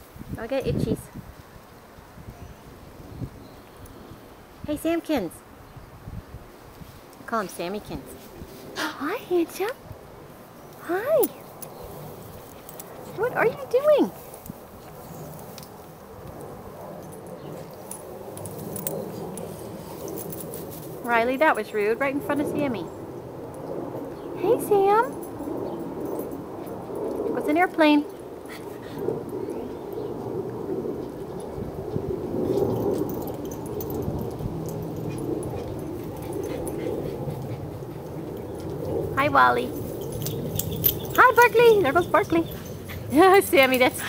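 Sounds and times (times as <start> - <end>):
dog collar tags jingling: 12.4 - 15.8, 16.8 - 22.7, 23.5 - 28.3, 32.3 - 44.0.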